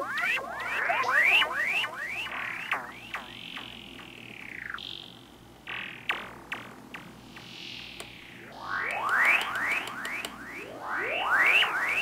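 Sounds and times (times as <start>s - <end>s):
high electronic tone gliding down: 0.0s - 6.2s, 7.4s - 12.0s
steady high electronic tone: 0.0s - 6.5s, 7.2s - 12.0s.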